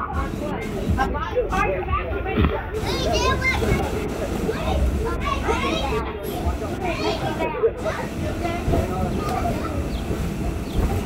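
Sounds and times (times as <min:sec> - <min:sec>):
young children playing: 0:00.0 - 0:11.0.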